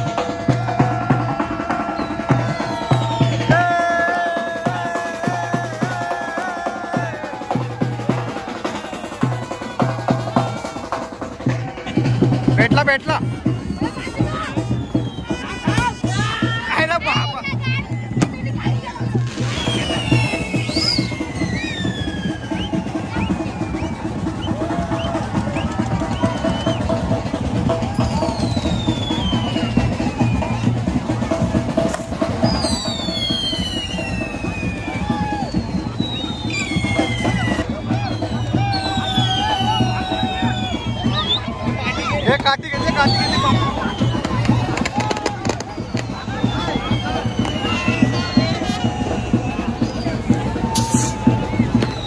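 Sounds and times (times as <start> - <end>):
crowd voices: 0.0 - 52.0
fast drum roll: 0.0 - 52.0
high falling whistles: 1.9 - 3.7, 19.4 - 24.0, 28.0 - 30.7, 32.4 - 41.5.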